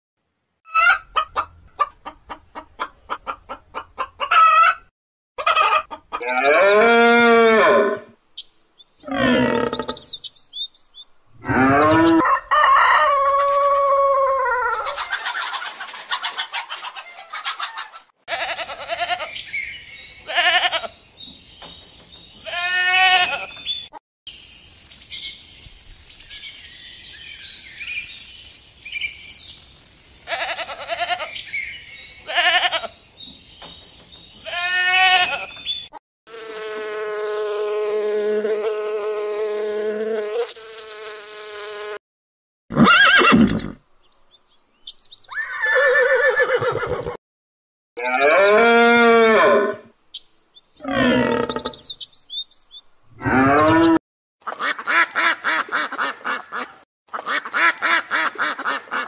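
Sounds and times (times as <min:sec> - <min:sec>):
rooster clucking and crowing: 0:00.7 - 0:07.4, 0:11.4 - 0:18.1
long steady animal call: 0:09.0 - 0:10.1, 0:50.8 - 0:51.8.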